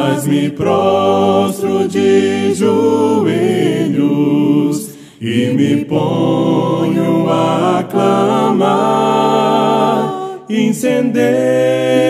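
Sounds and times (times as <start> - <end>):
voices singing worship song: 0.0 - 12.0.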